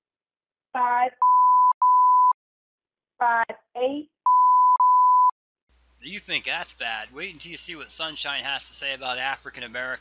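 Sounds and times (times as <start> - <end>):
censor bleeps: 1.2 - 2.4, 4.2 - 5.4.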